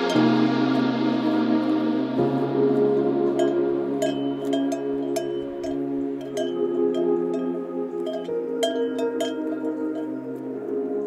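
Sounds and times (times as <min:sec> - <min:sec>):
chime-like strikes: 0:00.0 - 0:10.7
ambient music chords: 0:00.0 - 0:11.0.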